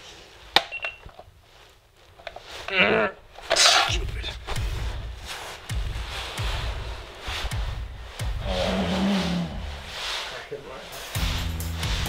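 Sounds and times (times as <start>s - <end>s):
groggy groan: 8.3s - 10.0s.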